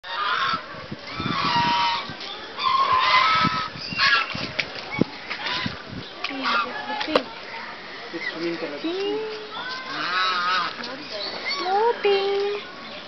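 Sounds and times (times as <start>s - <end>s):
waterfowl honking: 1.2s - 4.4s, 5.4s - 7.0s, 9.9s - 10.8s.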